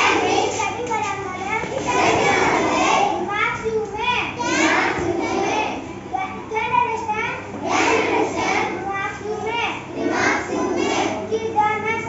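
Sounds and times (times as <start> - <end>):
boy reciting a poem: 0.0 - 12.0
children's voices: 0.0 - 12.0.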